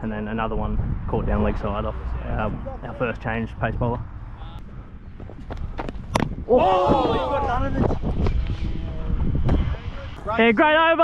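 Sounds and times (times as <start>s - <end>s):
wind rumbling on microphone: 0.0s - 10.5s.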